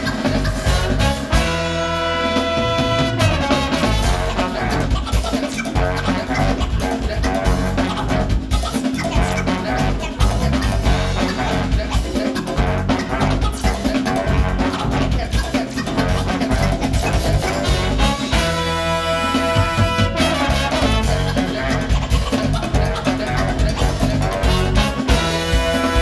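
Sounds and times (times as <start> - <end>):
bass guitar: 0.0 - 26.0
drum kit: 0.0 - 26.0
electric guitar: 0.0 - 26.0
saxophone: 0.0 - 26.0
trombone: 0.0 - 26.0.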